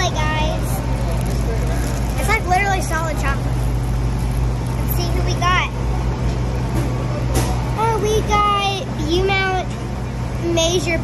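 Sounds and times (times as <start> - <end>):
child's voice: 0.0 - 0.8, 2.2 - 3.4, 4.8 - 5.8, 7.8 - 9.8, 10.4 - 11.0
low rumble of street traffic: 0.0 - 11.0.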